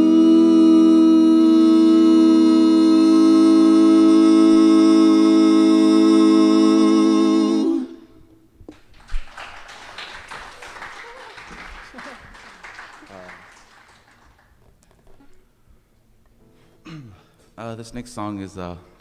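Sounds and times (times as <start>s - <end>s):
singers holding a chord: 0.0s - 8.2s
scattered applause: 8.7s - 14.7s.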